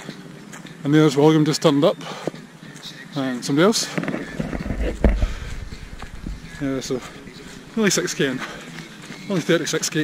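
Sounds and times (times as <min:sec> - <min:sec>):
running footsteps on track: 0:02.0 - 0:09.8
camera microphone handling: 0:04.0 - 0:06.4
wind rumble: 0:04.4 - 0:07.8.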